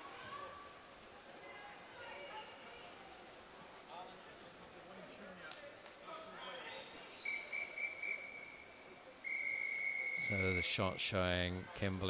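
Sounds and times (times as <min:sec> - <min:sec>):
referee's whistle blasts: 0:07.2 - 0:10.8.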